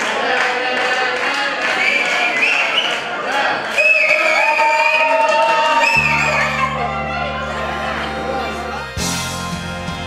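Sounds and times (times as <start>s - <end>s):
crowd singing and cheering: 0.0s - 10.0s
music: 5.8s - 10.0s
high notes sliding in pitch: 5.9s - 9.6s.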